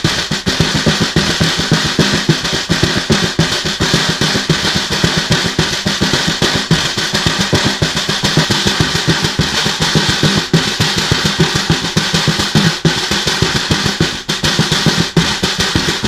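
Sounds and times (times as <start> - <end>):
snare drum played with hands: 0.0 - 16.0.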